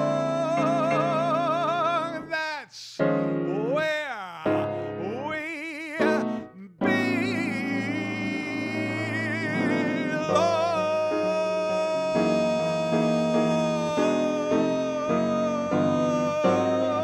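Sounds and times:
man singing with vibrato: 0.0s - 17.0s
piano chords: 0.0s - 17.0s.

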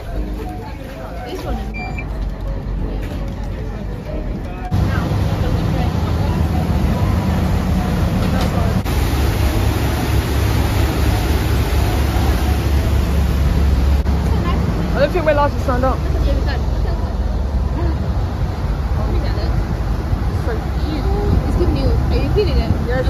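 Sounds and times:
boat engines humming: 0.0s - 23.0s
rushing water of boat wake: 4.7s - 23.0s.

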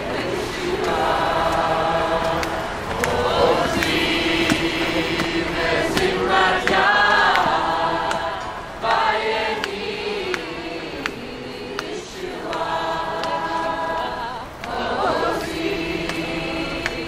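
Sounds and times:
crowd singing without instruments: 0.0s - 17.0s.

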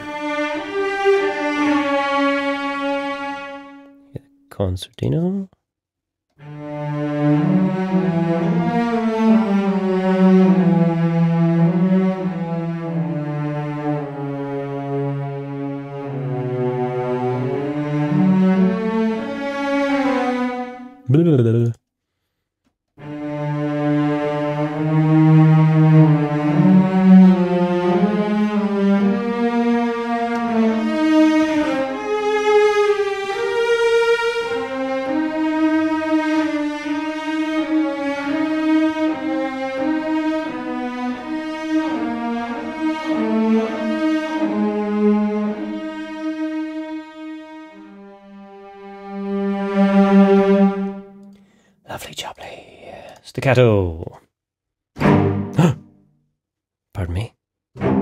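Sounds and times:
sampled cello section: 0.0s - 3.8s, 6.4s - 21.7s, 23.0s - 51.4s, 55.0s - 55.8s, 57.8s - 58.0s.

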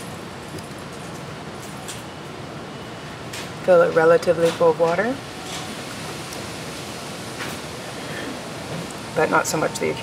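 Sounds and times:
room noise hiss: 5.2s - 10.0s.

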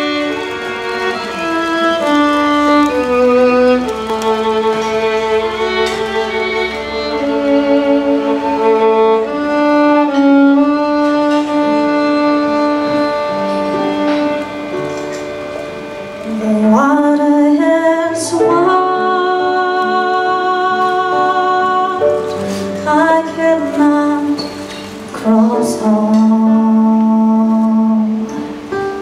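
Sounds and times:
acoustic guitar accompaniment: 0.0s - 29.0s
violins playing in harmony: 0.0s - 29.0s.

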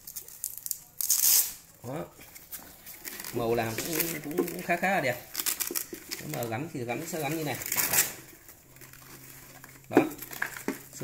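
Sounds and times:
velcro ripping: 0.0s - 1.7s, 7.3s - 8.3s.

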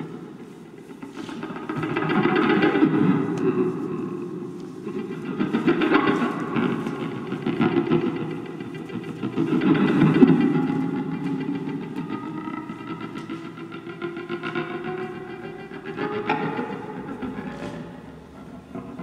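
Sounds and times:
guitar through effects: 0.0s - 19.0s.

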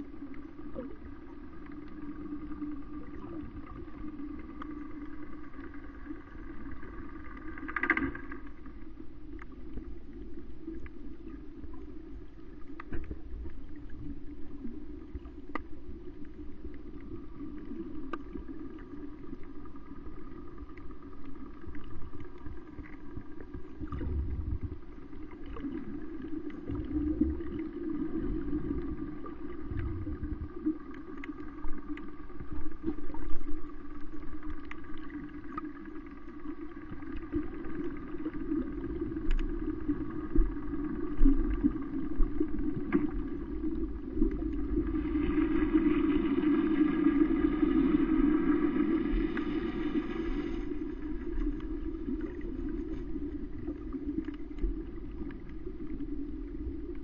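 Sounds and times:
boat engine drone underwater: 0.0s - 57.0s
faint clicks: 0.2s - 24.1s, 30.5s - 44.8s, 51.0s - 56.2s
low bumps: 23.9s - 24.8s.

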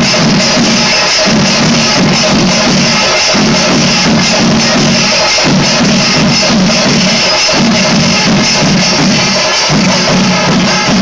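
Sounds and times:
hand cymbals clashing: 0.0s - 11.0s
massed drums: 0.0s - 11.0s.

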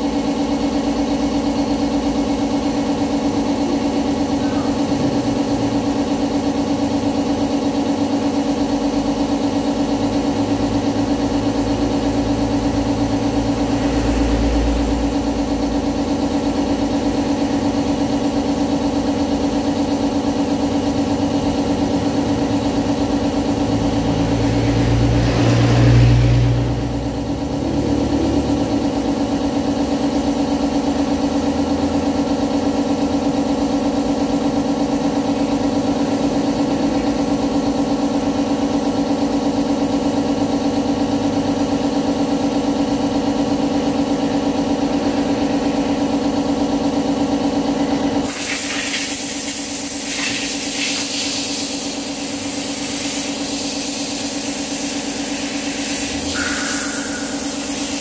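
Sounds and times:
engine-like motor hum: 0.0s - 58.0s.

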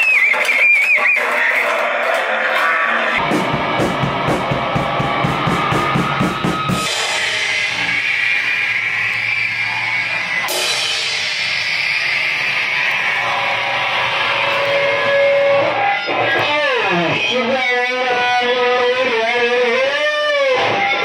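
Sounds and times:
distorted electric guitar: 0.0s - 21.0s
drums: 0.0s - 21.0s
cymbal crash: 3.2s - 16.3s
falling pitch sweeps: 4.3s - 16.1s
wavering sustained squeal: 4.4s - 20.9s.

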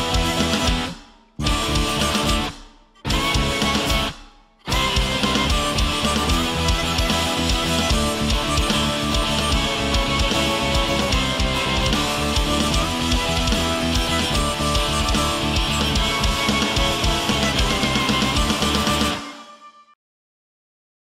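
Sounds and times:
drum kit: 0.0s - 19.6s
electric guitar: 0.0s - 19.6s
rock band music: 0.0s - 19.9s.

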